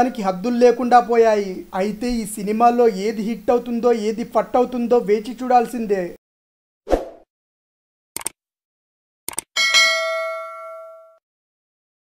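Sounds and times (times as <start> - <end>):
double mouse click: 9.3 - 9.5
bright bell ding: 9.6 - 11.2.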